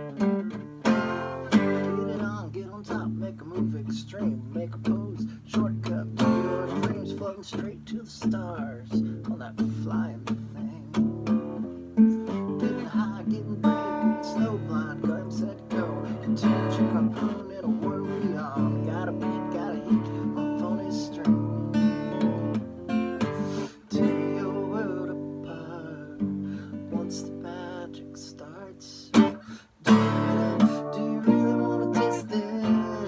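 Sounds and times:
acoustic guitar strumming: 0.0 - 33.0.

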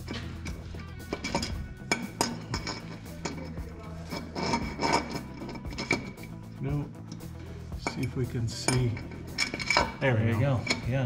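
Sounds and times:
background music: 0.0 - 11.0
metal clinks and scrapes: 0.0 - 11.0.

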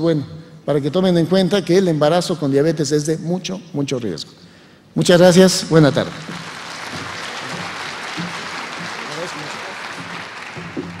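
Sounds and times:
audience applauding: 5.9 - 11.0.

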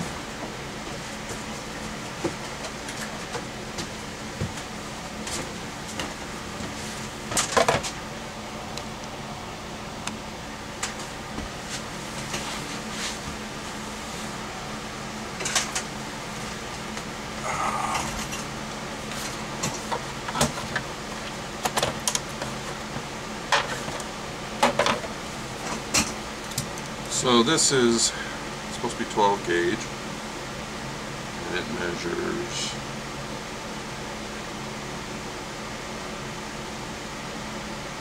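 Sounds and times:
low room hum: 0.0 - 38.0.

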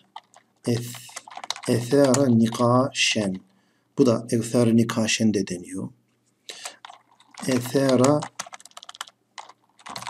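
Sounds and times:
keyboard typing: 0.0 - 3.5, 6.5 - 10.0.

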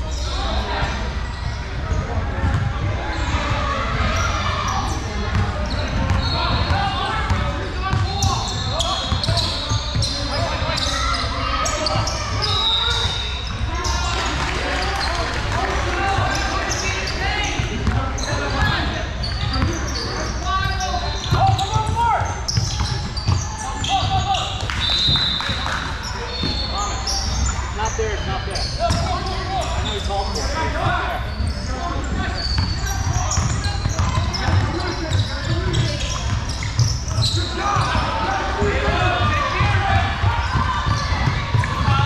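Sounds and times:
sneakers squeaking on floor: 0.0 - 42.0
basketball dribbling: 32.5 - 42.0.

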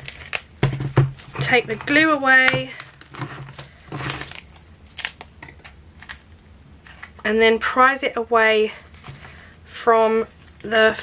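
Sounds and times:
plastic crackling clicks: 0.0 - 0.5
plastic scraping: 0.0 - 6.2.

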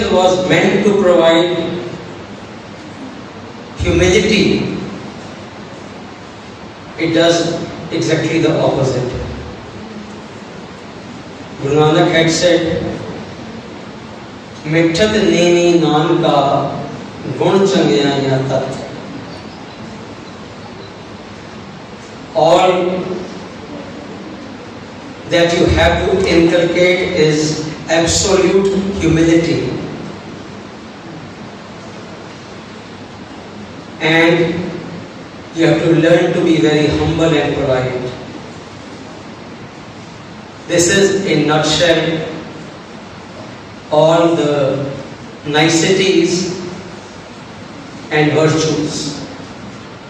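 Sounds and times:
man speaking: 0.0 - 2.0, 3.8 - 5.1, 7.0 - 9.6, 11.6 - 13.3, 14.6 - 19.0, 22.3 - 23.9, 25.2 - 30.1, 34.0 - 35.0, 35.6 - 38.3, 40.7 - 42.6, 43.9 - 46.9, 48.1 - 49.4
steady hiss and room noise: 0.0 - 50.0.

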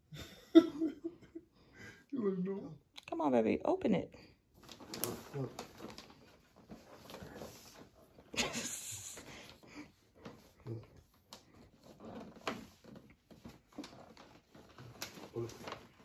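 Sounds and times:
paper crinkling: 4.6 - 8.4, 9.2 - 16.0.

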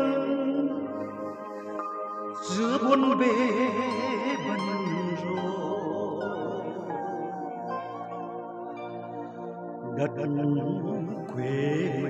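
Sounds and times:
man singing into microphone: 0.0 - 1.0, 2.4 - 7.9, 9.9 - 12.0
karaoke backing track: 0.0 - 12.0.

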